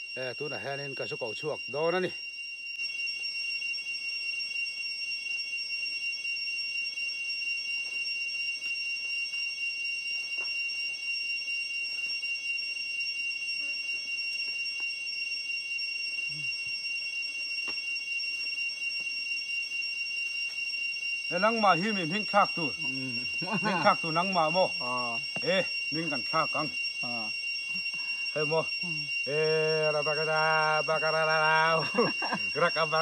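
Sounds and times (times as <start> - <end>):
insects buzzing: 0.0 - 33.0.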